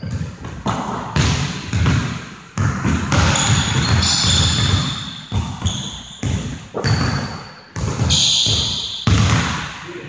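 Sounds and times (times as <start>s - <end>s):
sneakers squeaking on hardwood: 0.0s - 0.7s, 3.1s - 9.5s
basketball bouncing: 0.0s - 9.8s.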